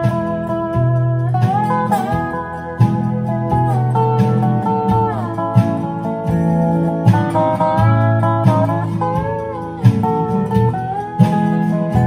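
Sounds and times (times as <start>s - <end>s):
picked bass notes: 0.0s - 12.0s
slide resonator guitar melody: 0.0s - 12.0s.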